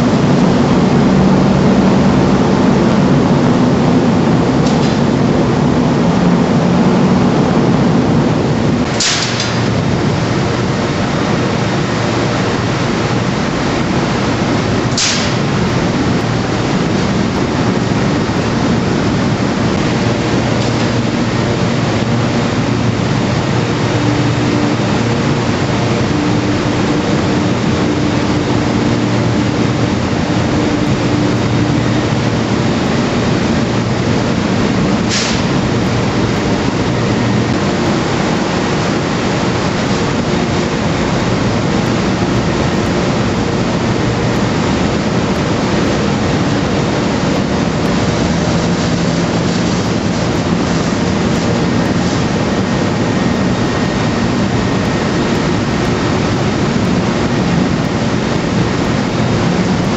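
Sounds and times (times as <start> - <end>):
electric shovel machinery din: 0.0 - 59.9
low hum: 0.0 - 59.9.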